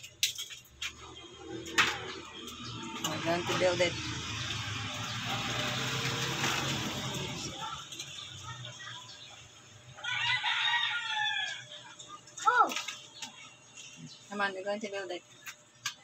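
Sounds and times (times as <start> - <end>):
noisy background hum: 0.0 - 16.0.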